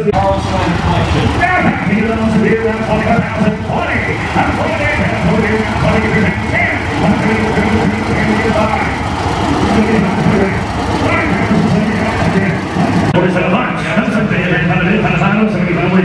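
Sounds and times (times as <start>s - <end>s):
auctioneer chanting over loudspeakers: 0.0s - 9.0s
tractor engine running: 0.0s - 16.0s.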